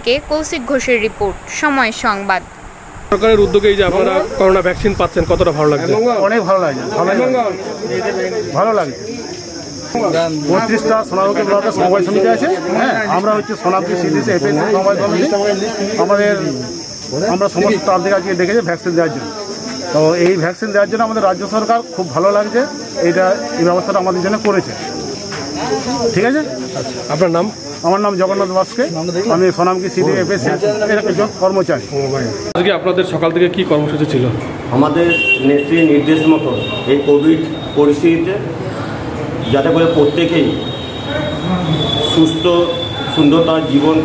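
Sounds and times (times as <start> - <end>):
high-pitched whine: 0.0 - 5.8
crickets or cicadas droning: 0.0 - 44.0
man talking: 3.1 - 9.0, 25.9 - 38.5, 39.5 - 44.0.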